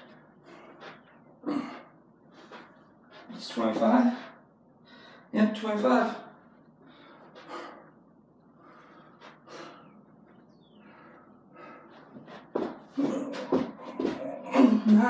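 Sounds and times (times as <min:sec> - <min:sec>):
man breathing hard and gasping: 0:06.8 - 0:14.8.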